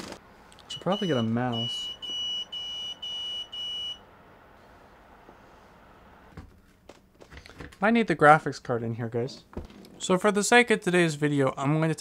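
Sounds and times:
man speaking: 0:00.7 - 0:02.0, 0:10.0 - 0:12.0.

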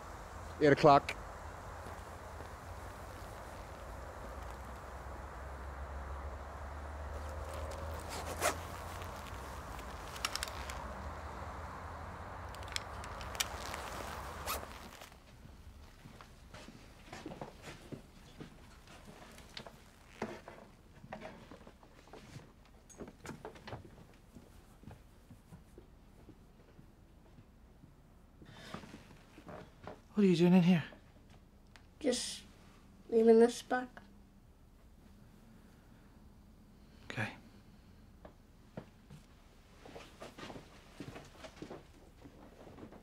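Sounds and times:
steady low hum: 0:00.0 - 0:20.1
quiet rustles: 0:00.0 - 0:26.8.

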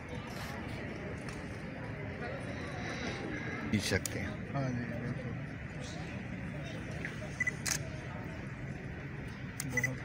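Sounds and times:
low room murmur: 0:00.0 - 0:10.0
camera focus beep: 0:07.0 - 0:07.8, 0:09.6 - 0:10.0.

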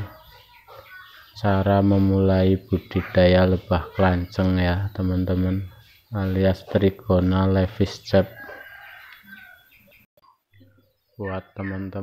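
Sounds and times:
chicken calling: 0:00.0 - 0:12.0.

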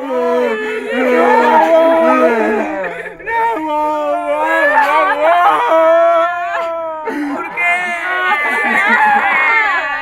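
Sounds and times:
people wailing: 0:00.0 - 0:10.0.

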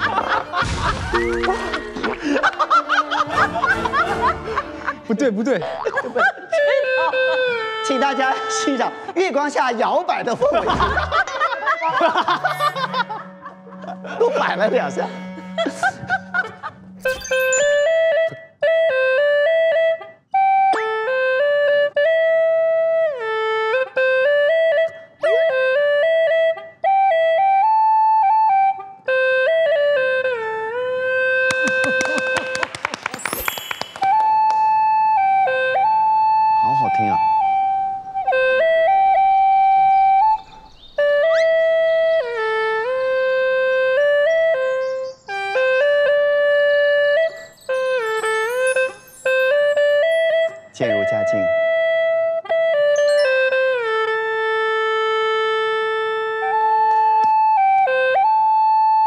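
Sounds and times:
gourd flute melody: 0:00.0 - 0:09.9, 0:11.0 - 0:59.0.

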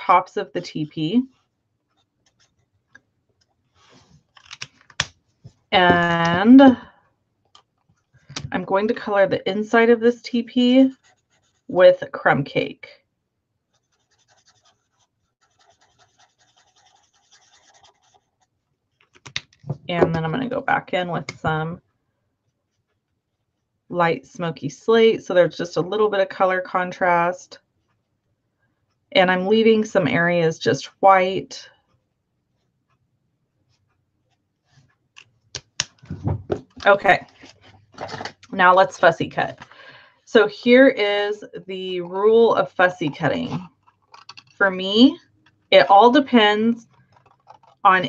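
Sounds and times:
marker nib scratching on paper: 0:10.8 - 0:11.9, 0:13.7 - 0:19.1.

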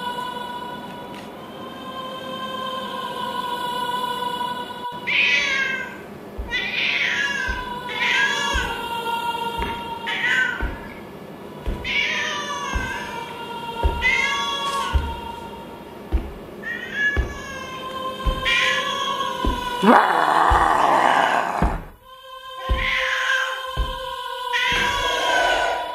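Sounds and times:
low thuds: 0:06.4 - 0:06.6, 0:07.4 - 0:09.0, 0:12.7 - 0:13.2, 0:14.8 - 0:16.6, 0:18.2 - 0:18.6
cat meowing: 0:19.8 - 0:21.6.

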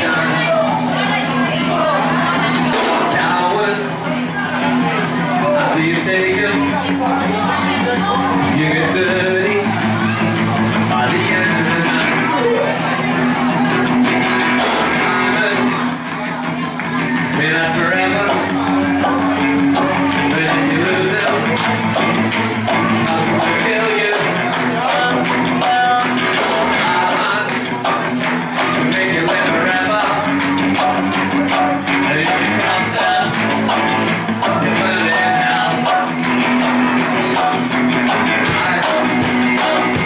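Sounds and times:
electric guitars: 0:00.0 - 0:40.0
man singing lead vocal: 0:00.0 - 0:40.0
steady drum beat: 0:00.0 - 0:40.0.

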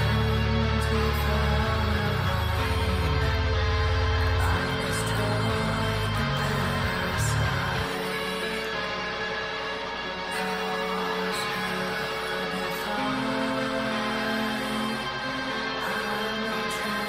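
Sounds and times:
dense low bass: 0:00.0 - 0:07.9
heavy metal song: 0:00.0 - 0:17.0.

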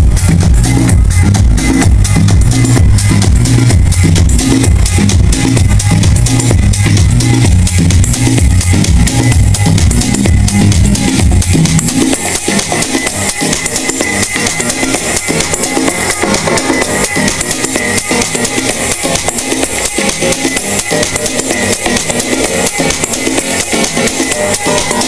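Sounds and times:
kick drum beat: 0:00.0 - 0:25.0
loud dance music: 0:00.0 - 0:25.0.

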